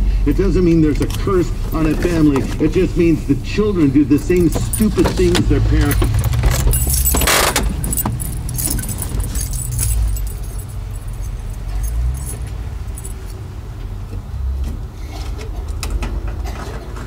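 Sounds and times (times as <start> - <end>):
car engine rumble inside cabin: 0.0 - 15.0
light clicks and rattles: 4.2 - 13.4.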